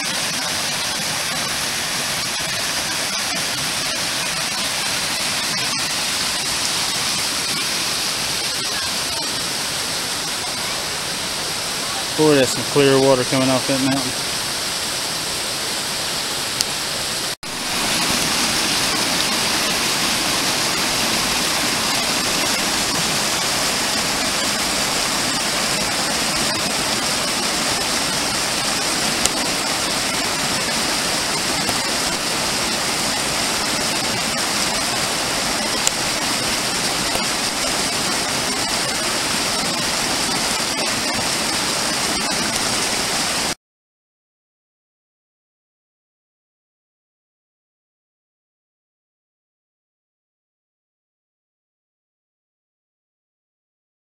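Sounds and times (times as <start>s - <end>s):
stream splashing over rocks: 0.0s - 43.6s.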